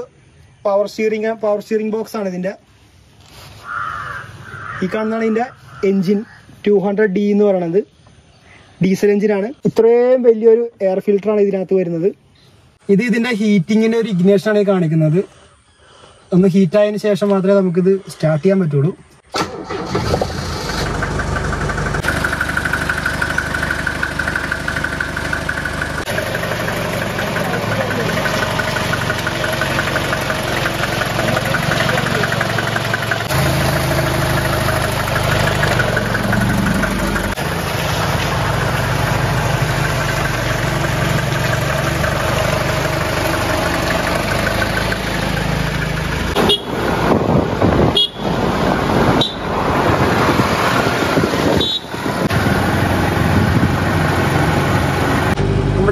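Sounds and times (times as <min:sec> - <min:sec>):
diesel engine starting and running: 0:19.2 - 0:55.9.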